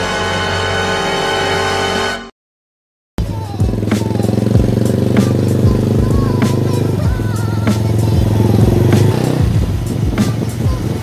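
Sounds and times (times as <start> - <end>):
background music with steady beat: 3.2 - 11.0
motorcycle engine running: 3.2 - 11.0.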